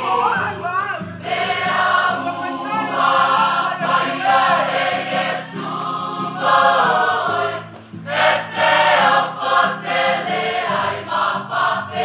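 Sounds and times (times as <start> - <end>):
male choir singing in harmony: 1.2 - 12.0.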